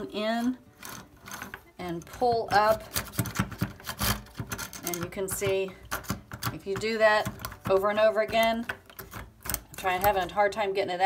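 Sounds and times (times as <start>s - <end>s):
plastic drain snake scraping drain: 0.0s - 10.4s.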